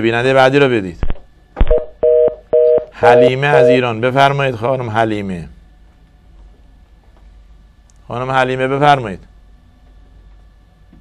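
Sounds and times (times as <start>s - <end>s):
two-note telephone beeps: 2.0s - 3.8s.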